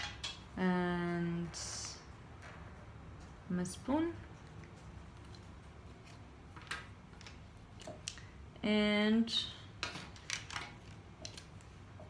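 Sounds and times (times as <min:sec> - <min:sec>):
felt-tip markers clicking and rustling: 0:10.2 - 0:11.8.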